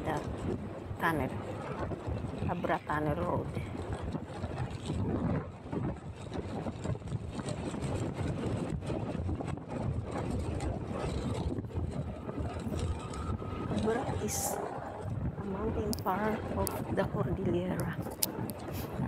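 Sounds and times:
road noise: 0.0 - 19.0
wind buffeting microphone: 0.0 - 19.0
motorcycle engine: 9.6 - 15.7.

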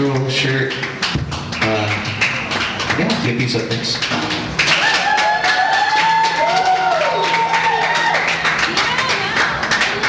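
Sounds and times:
drums: 0.0 - 10.0.

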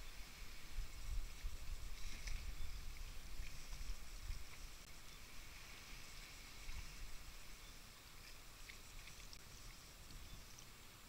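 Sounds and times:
low wind rumble on microphone: 0.0 - 11.0
paddle splashing and dripping water: 0.0 - 11.0.

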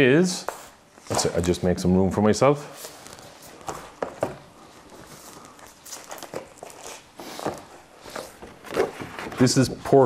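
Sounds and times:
paper rustling: 2.8 - 10.0.

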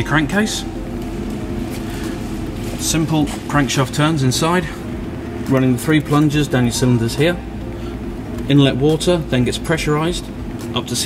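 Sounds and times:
pump humming: 0.0 - 11.0.

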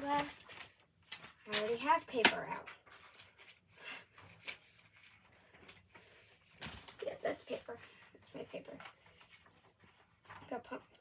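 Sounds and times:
paper rustling: 0.0 - 11.0.

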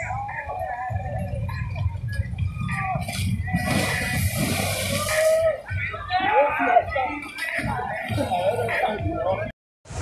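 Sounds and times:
person splashing into pool: 3.0 - 5.5.

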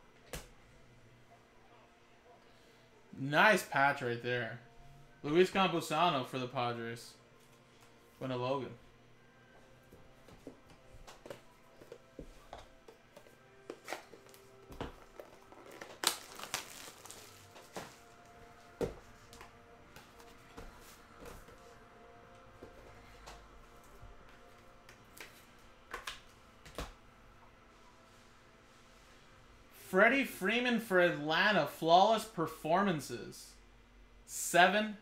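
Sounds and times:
cards and plastic sleeves crinkling: 13.7 - 18.2.

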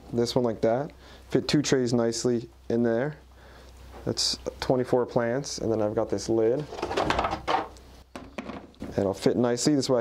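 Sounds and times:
objects clattering: 6.6 - 9.0.

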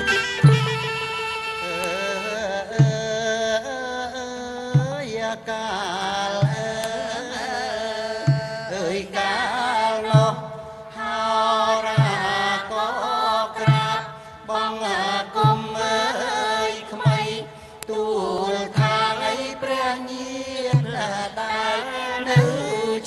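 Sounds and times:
low drum beat: 0.0 - 1.4, 2.7 - 3.4, 4.6 - 9.2, 10.0 - 10.7, 15.3 - 16.0, 20.6 - 21.4, 22.3 - 23.0
person chanting: 1.5 - 23.0.

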